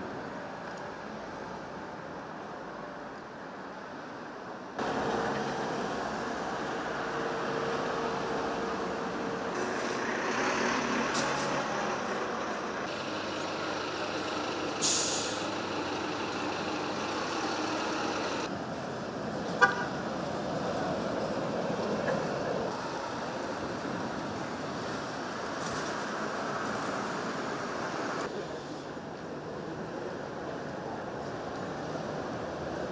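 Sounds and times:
street traffic: 0.0s - 32.9s
loud hiss: 12.9s - 15.9s.

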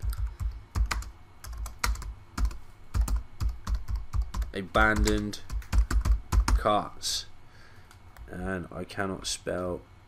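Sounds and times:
typing on computer keyboard: 0.0s - 6.6s.

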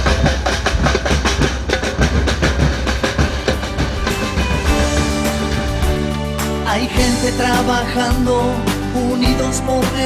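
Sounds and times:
fast dense drumming: 0.0s - 10.0s.

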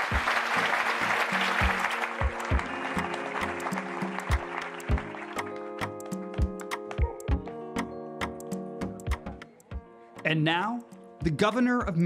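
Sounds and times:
audience applause: 0.0s - 6.5s
music with steady drum beat: 0.0s - 7.6s, 8.2s - 9.9s, 10.8s - 12.0s
sharp ticking percussion: 1.2s - 9.8s.

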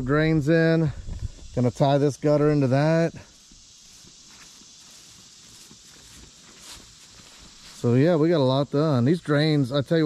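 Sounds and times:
steady high background hiss: 0.0s - 10.0s
footsteps on grass: 2.3s - 9.4s.

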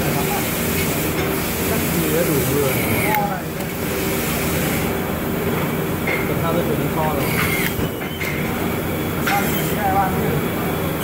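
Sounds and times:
factory machinery humming: 0.0s - 11.0s.

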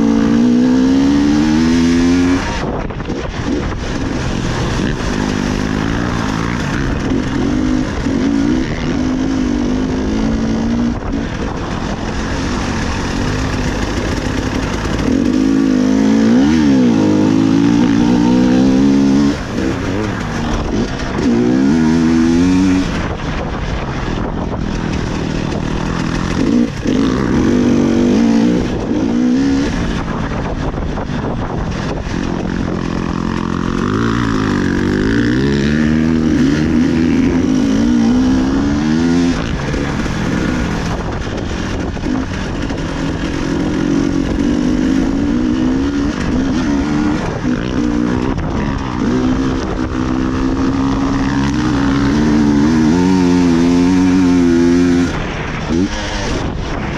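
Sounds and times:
two-stroke motorcycle engine revving: 0.0s - 56.9s.

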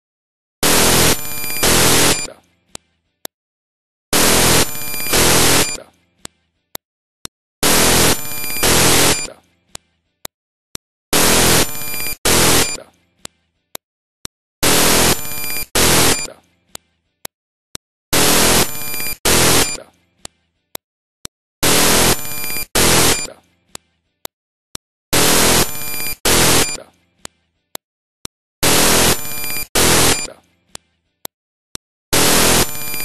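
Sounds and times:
distorted digital noise with tones: 0.6s - 2.3s, 4.2s - 5.8s, 7.6s - 9.3s, 11.2s - 12.8s, 14.6s - 16.3s, 18.2s - 19.8s, 21.6s - 23.3s, 25.2s - 26.8s, 28.6s - 30.4s, 32.2s - 33.0s.

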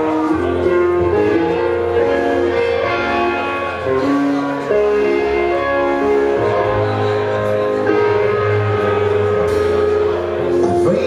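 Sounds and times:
bass guitar: 0.0s - 11.0s
electric guitar chords: 0.0s - 11.0s.

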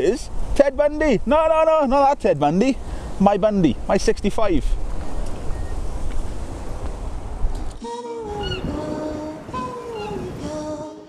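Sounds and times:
wind rumbling on microphone: 0.0s - 11.0s
music with sung melody: 7.8s - 11.0s.

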